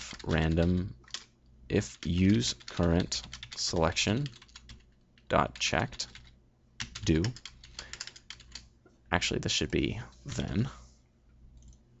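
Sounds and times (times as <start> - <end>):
typing on computer keyboard: 0.0 - 1.3, 1.9 - 5.3, 6.1 - 8.7.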